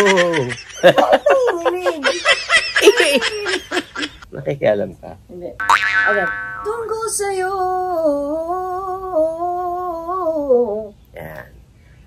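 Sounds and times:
woman laughing: 0.0 - 4.2
woman singing a vocal run: 6.7 - 11.0.

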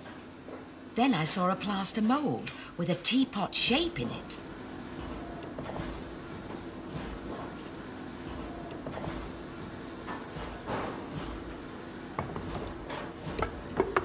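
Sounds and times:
steady factory hum: 0.0 - 14.0.

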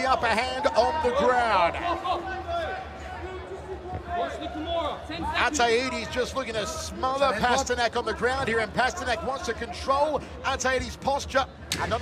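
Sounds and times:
man speaking commentary: 0.0 - 12.0.

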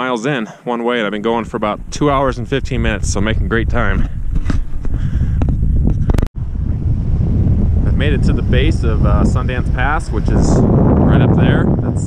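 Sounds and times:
wind rumbling on microphone: 1.1 - 12.0.

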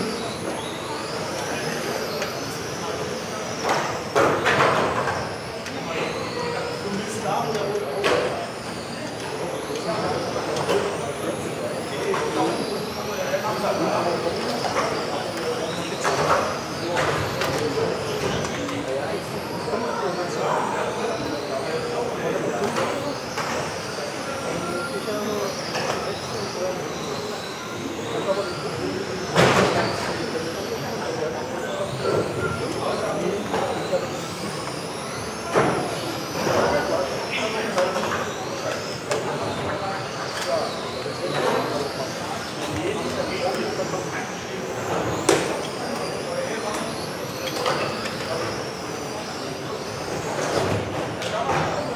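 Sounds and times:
background chatter: 0.0 - 51.9
rc car motors whining: 0.0 - 51.9.

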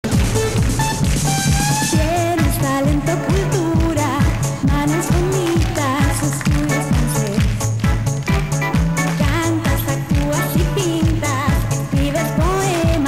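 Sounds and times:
backing track with kick drum: 0.0 - 13.0
girl singing pop song: 1.9 - 7.6, 8.8 - 13.0.

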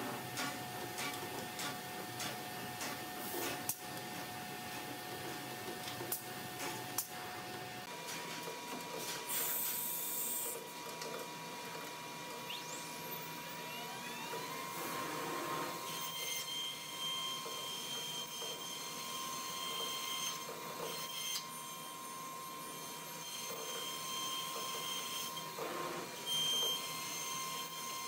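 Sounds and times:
cnc router whine and cutting: 11.4 - 28.0.

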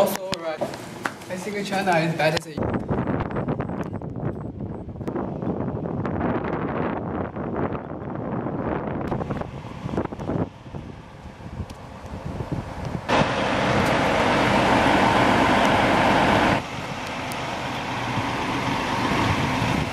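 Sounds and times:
bus engine idling: 8.6 - 19.9.

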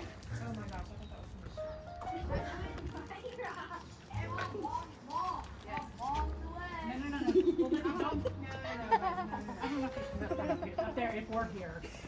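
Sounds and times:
people talking indistinctly: 0.3 - 12.0
footsteps on bare rock: 2.4 - 7.2.

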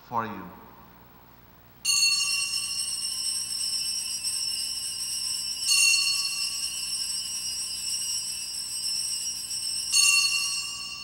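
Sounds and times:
altar bells jingling: 1.8 - 11.0.

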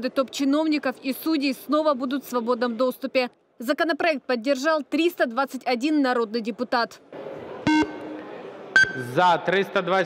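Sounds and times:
short electronic beeps: 7.7 - 8.2, 8.8 - 9.2.

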